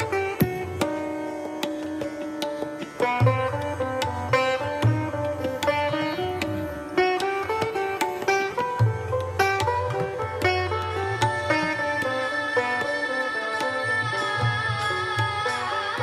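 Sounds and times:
sitar playing: 0.0 - 16.0
tabla drumming: 0.0 - 16.0.

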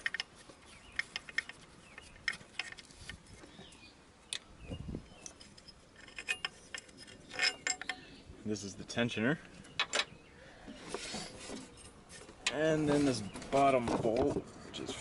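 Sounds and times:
metallic clicks of bolt and tools: 0.0 - 3.2, 5.2 - 8.1, 9.8 - 10.1.

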